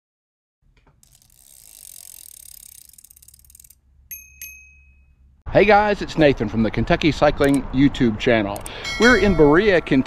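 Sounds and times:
bicycle freewheel hub ratcheting: 0:00.8 - 0:04.8.

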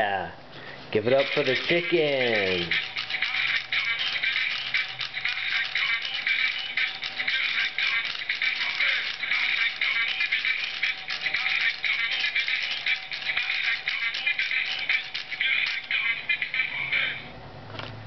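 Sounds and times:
tinny song from tiny speaker: 0:01.0 - 0:17.3.

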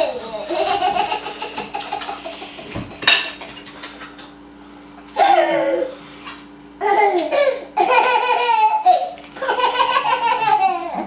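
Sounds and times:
tableware clinking: 0:03.0 - 0:03.6.

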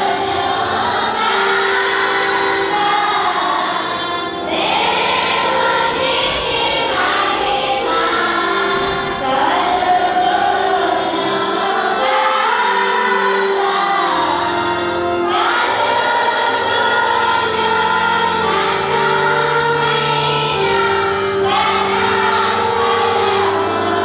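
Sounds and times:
church choir singing a hymn: 0:00.0 - 0:24.0
instrumental accompaniment: 0:00.0 - 0:24.0.

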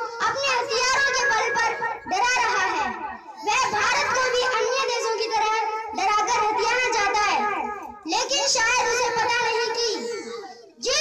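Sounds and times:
boy speaking into a microphone: 0:00.0 - 0:11.0.

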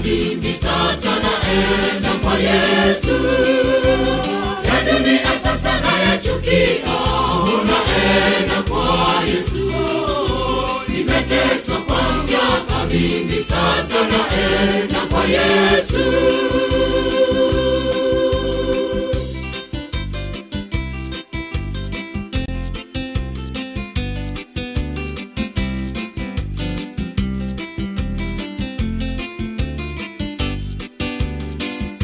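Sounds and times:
choir singing gospel: 0:00.0 - 0:19.4
steady bass line: 0:00.0 - 0:32.0
drum beat: 0:03.9 - 0:19.3.

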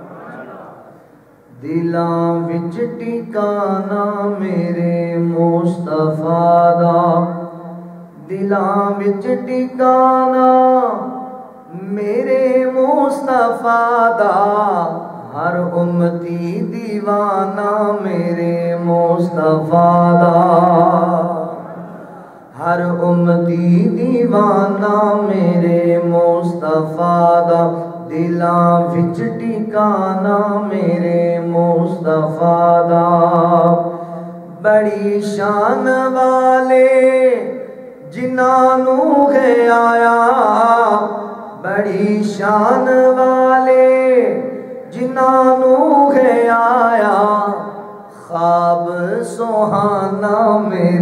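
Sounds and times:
man chanting into a microphone: 0:00.0 - 0:51.0
man singing unaccompanied: 0:01.5 - 0:51.0.

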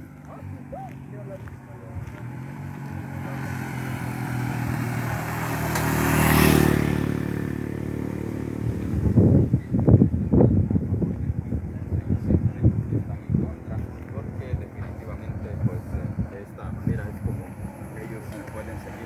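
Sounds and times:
vehicle passing by: 0:00.0 - 0:19.0
wind buffeting microphone: 0:00.0 - 0:19.0.

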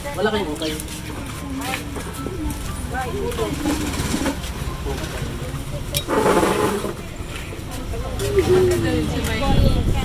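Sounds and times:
muffled voices: 0:00.0 - 0:10.0.

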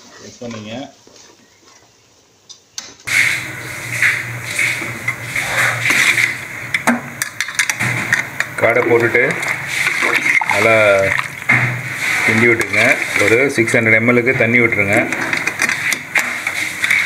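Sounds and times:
steady hiss and hum: 0:00.0 - 0:17.0
metal ladle scraping pot: 0:03.1 - 0:13.9, 0:14.7 - 0:17.0.

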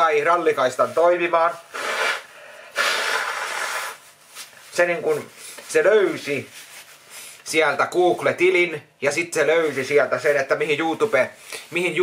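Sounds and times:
man blowing his nose: 0:01.5 - 0:04.4.

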